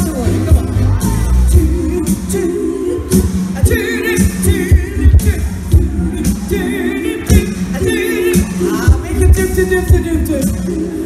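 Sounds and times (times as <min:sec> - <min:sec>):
band with drums and bass: 0:00.0 - 0:11.0.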